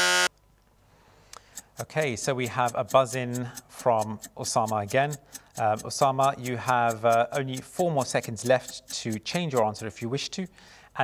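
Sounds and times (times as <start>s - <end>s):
electronic buzzer tone: 0.0s - 0.3s
person speaking: 1.4s - 11.0s.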